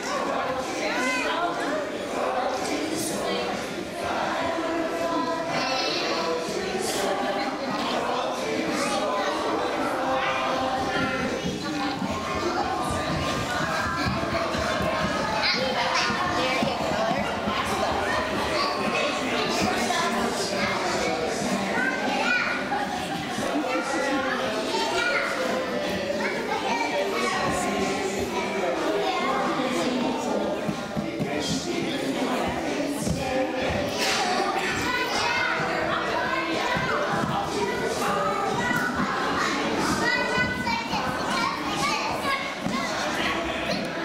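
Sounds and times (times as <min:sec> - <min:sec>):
young children chattering: 0:00.0 - 0:44.0.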